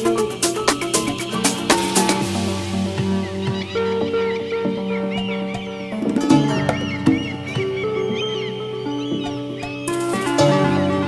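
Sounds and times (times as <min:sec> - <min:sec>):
bird chirps: 0:00.0 - 0:10.9
held synth chords: 0:00.0 - 0:11.0.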